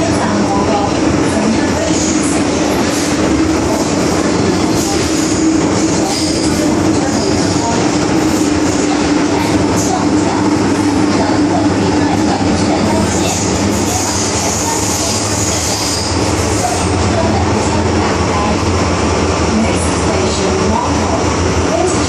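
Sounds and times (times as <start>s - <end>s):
train rolling noise: 0.0s - 22.0s.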